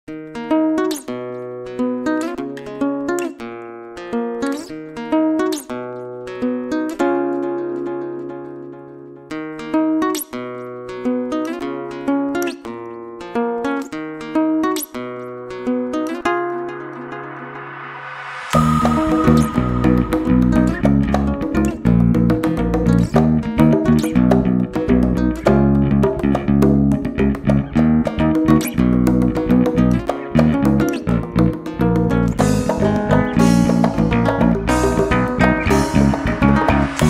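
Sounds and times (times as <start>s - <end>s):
fingerpicked acoustic guitar: 0.1s - 17.6s, 18.6s - 37.0s.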